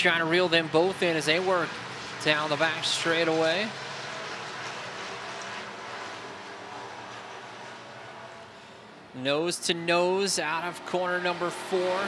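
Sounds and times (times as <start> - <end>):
distant race car engines drone: 0.0 - 12.0.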